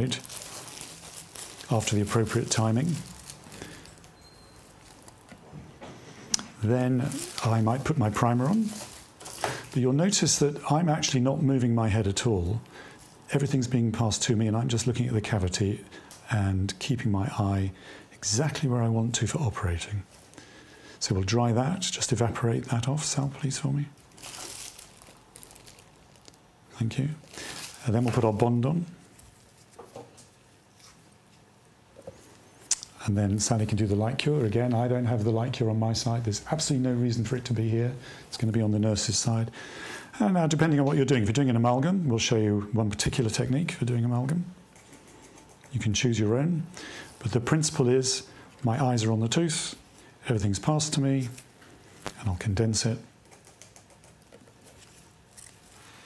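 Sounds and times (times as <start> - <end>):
dental instruments handling: 0.0 - 10.2, 23.1 - 33.0, 53.2 - 56.0.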